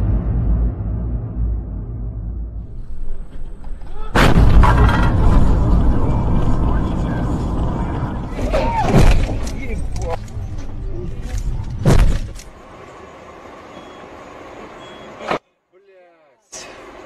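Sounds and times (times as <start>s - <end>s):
car crash: 0.0s - 10.8s
loud clattering: 2.6s - 10.2s.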